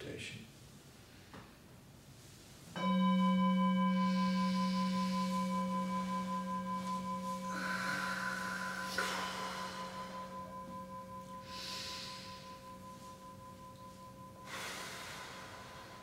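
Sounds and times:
meditation bowl bell ringing: 2.7s - 16.0s.

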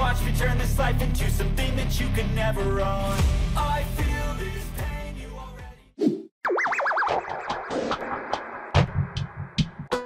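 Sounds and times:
falling sound effect: 6.0s - 8.7s.

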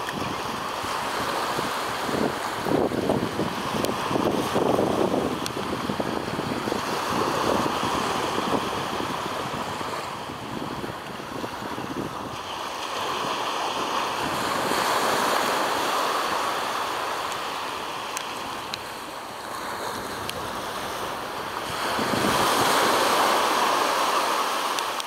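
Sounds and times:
sea surf washing ashore: 0.0s - 25.0s
wind rumbling on microphone: 0.0s - 25.0s.

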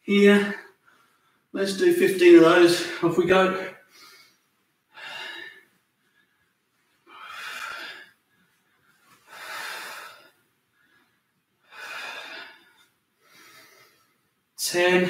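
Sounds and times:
man breathing hard: 3.8s - 14.2s.

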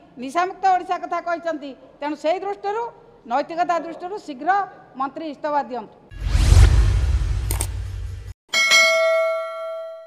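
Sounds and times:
low rumbling transition effect: 6.1s - 8.4s
notification bell ding: 8.6s - 10.0s.

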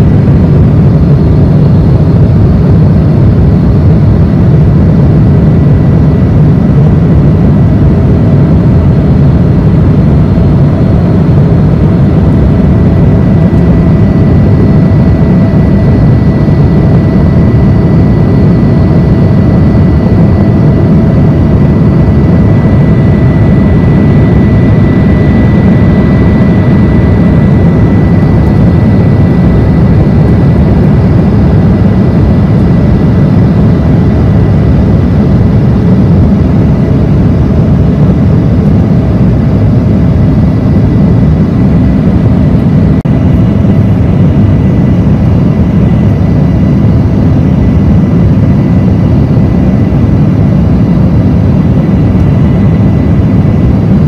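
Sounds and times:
jet engine and airflow rush: 0.0s - 54.0s
thin steady whine: 0.0s - 54.0s.

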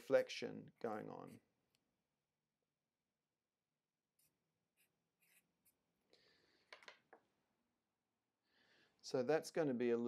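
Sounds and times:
marker drawing on paper: 4.1s - 6.0s.

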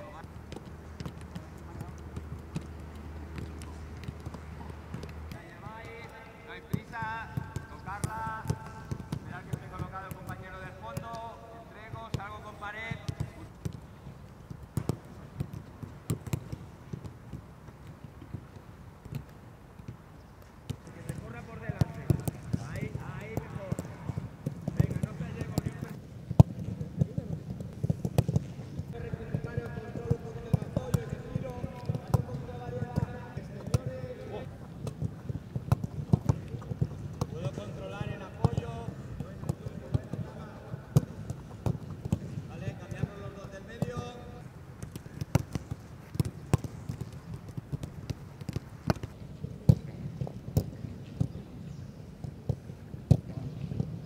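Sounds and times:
boot kicking football thuds: 44.9s - 51.3s.

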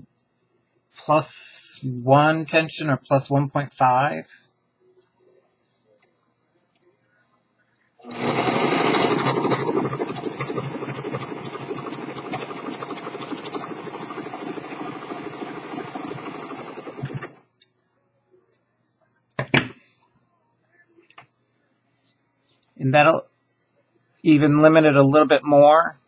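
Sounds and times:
serger sewing machine stitching: 8.0s - 17.4s.

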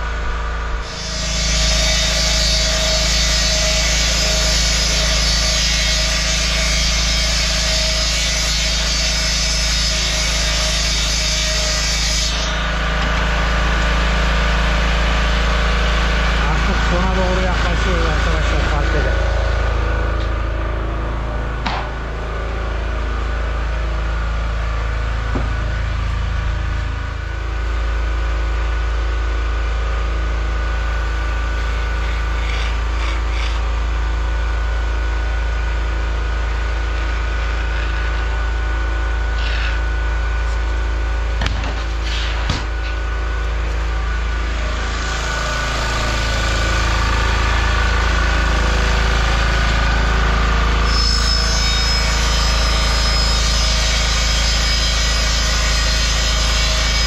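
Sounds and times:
portable generator running: 12.5s - 51.3s.

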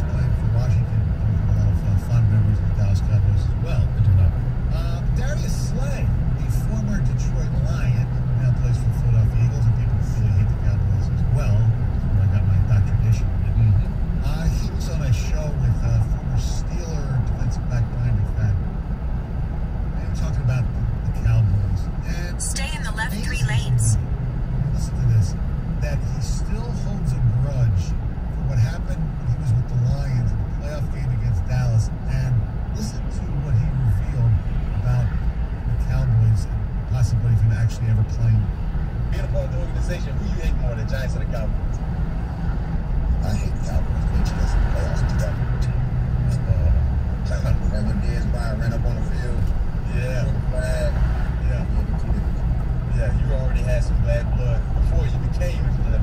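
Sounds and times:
car road and engine drone: 0.0s - 56.0s.

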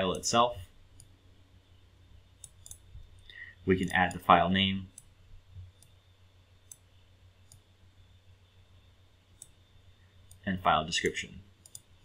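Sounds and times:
low steady hum: 0.0s - 12.0s
computer mouse clicks: 0.9s - 1.1s, 2.4s - 4.2s, 4.9s - 6.0s, 6.6s - 7.7s, 9.4s - 9.6s, 10.2s - 10.4s, 11.6s - 11.9s.

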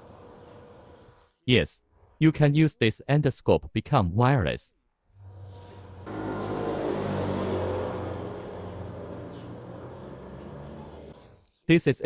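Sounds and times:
vehicle engine passing: 5.2s - 11.3s.

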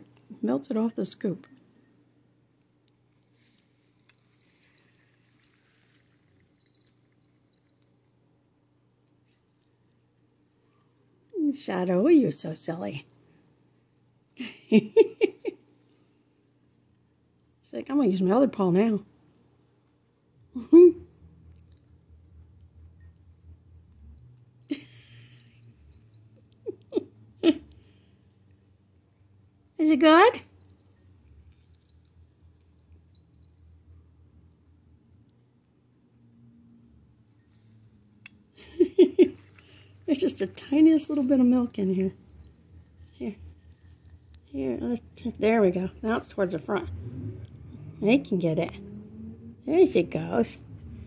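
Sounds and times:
low room hum: 0.0s - 51.0s
person chuckling: 20.6s - 21.1s, 24.7s - 25.8s, 26.4s - 27.7s, 38.6s - 39.8s.

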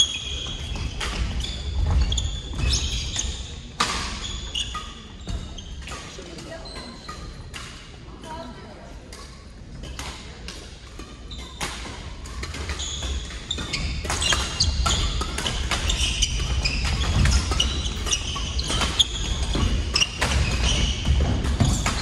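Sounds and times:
shoes squeaking on wooden floor: 0.0s - 7.1s, 12.7s - 22.0s
racket hitting shuttlecock: 9.1s - 22.0s.

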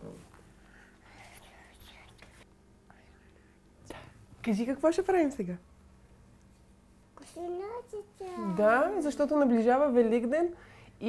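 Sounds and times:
child whispering: 1.0s - 3.2s.

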